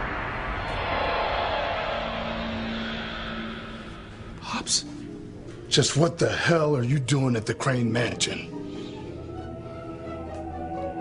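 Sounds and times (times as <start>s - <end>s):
dramatic whooshing music sting: 0.0s - 5.6s
low held note: 0.0s - 5.7s.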